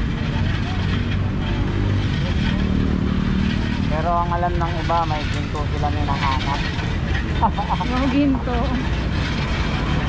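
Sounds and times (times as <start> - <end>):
loud low outdoor rumble: 0.0 - 10.0.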